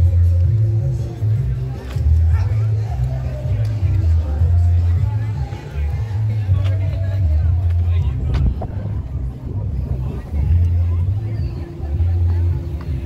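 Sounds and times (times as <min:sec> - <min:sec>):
faint voices: 0:00.0 - 0:13.0
heavy low rumble: 0:04.0 - 0:13.0.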